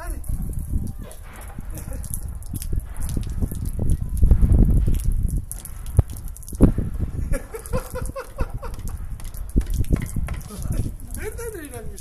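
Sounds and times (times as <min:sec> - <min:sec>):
low thumps: 0:00.0 - 0:11.2.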